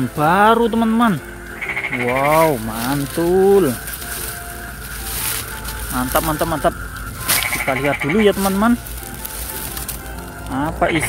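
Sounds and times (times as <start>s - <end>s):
quiet background music: 0.0s - 11.0s
plastic packaging crinkling: 1.2s - 11.0s.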